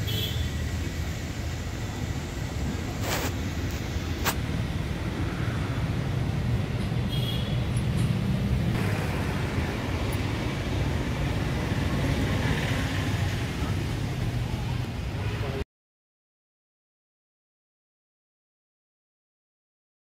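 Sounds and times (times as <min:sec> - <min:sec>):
road traffic rumble: 0:00.0 - 0:15.6.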